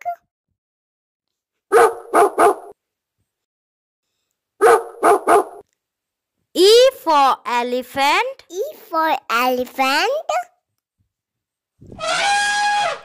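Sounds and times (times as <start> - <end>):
dog barking: 1.7 - 2.8, 4.6 - 5.6.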